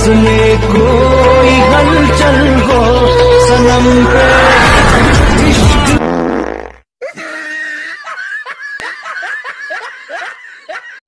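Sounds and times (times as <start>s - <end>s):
loud music: 0.0s - 6.0s
person laughing: 7.0s - 11.0s.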